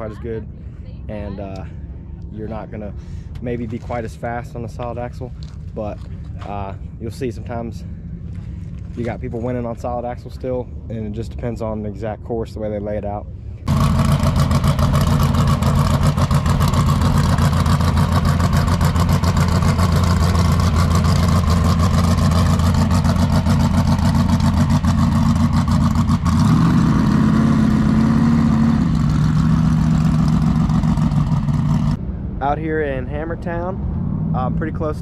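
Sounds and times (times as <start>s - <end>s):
race car engine running loud: 13.6s - 32.6s.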